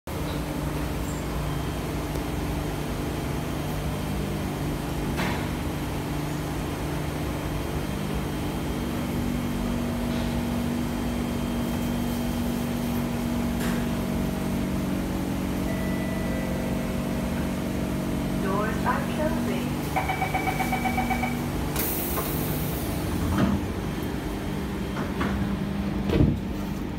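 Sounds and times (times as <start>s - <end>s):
train air conditioning humming: 0.1s - 26.9s.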